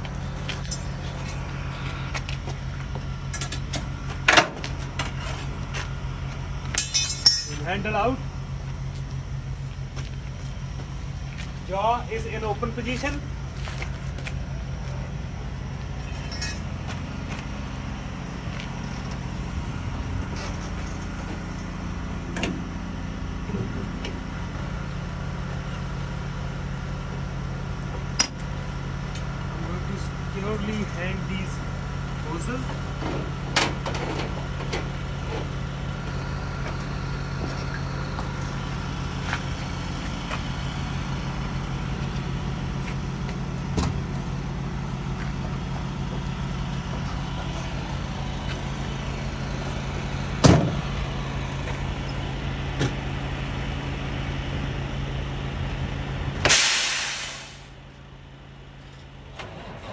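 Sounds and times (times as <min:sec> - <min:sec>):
diesel truck engine idling: 0:00.0 - 0:59.9
sharp metal knocks and clanks: 0:06.7 - 0:07.7.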